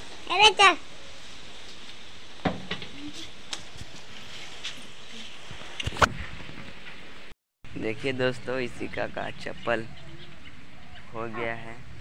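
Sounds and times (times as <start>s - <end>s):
steady background hiss: 0.0s - 5.8s.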